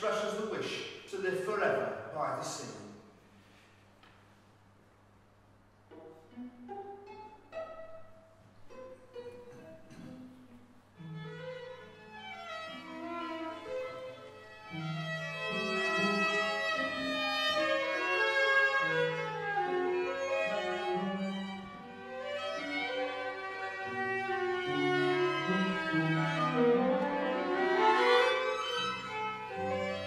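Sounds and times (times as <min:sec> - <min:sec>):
string quartet playing: 0:05.9 - 0:10.0, 0:11.0 - 0:30.0.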